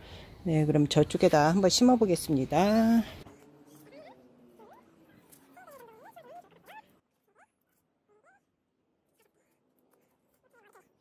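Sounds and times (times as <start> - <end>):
faint animal calls: 3.3 - 8.5, 9.1 - 11.0.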